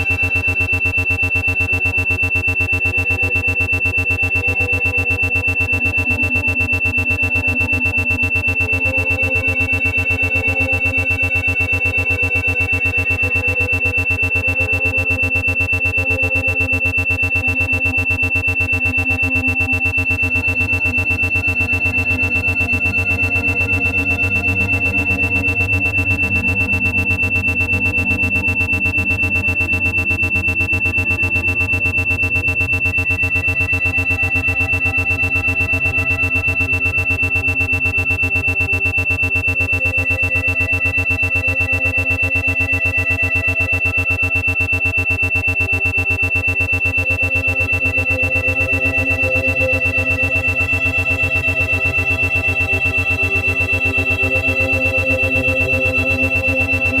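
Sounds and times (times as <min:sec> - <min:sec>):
steady high tone: 0:00.0 - 0:57.0
rapid even pulsing beat: 0:10.8 - 0:55.0.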